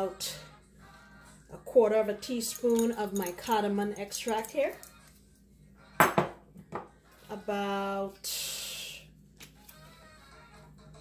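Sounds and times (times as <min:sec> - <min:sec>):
glass bottles clinking on countertop: 0:06.0 - 0:06.9.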